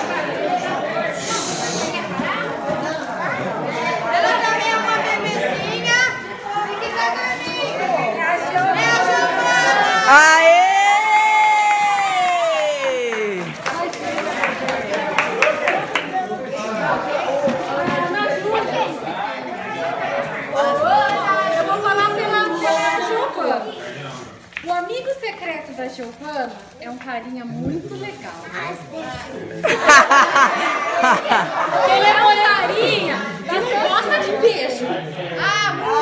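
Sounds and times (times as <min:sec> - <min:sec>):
people talking at once: 0:00.0 - 0:11.2, 0:12.0 - 0:36.0.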